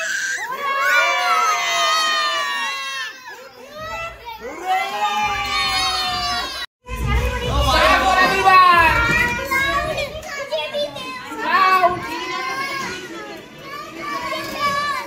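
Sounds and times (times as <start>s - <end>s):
children talking and calling out: 0.0s - 15.0s.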